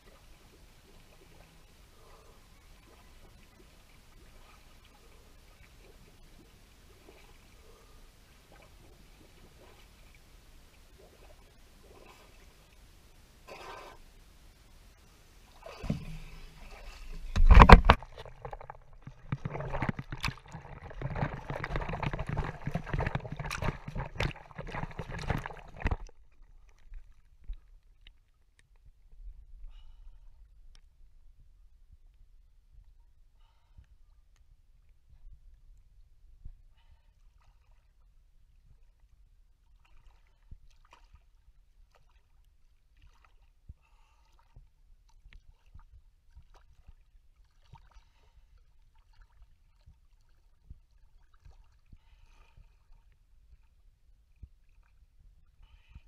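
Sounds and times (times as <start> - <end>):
water splashing and sloshing: 0.0 - 30.9, 36.8 - 56.0
water sloshing: 15.0 - 28.5.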